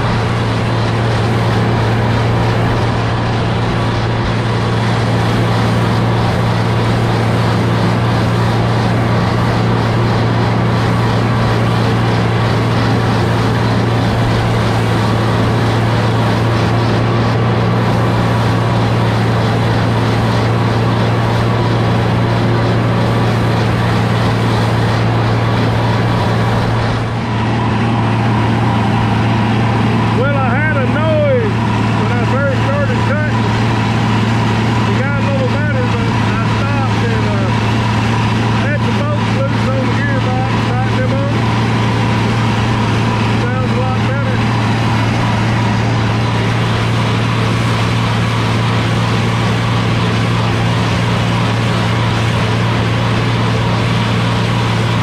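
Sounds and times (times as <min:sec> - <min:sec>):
tractor engine droning: 0:00.0 - 0:55.0.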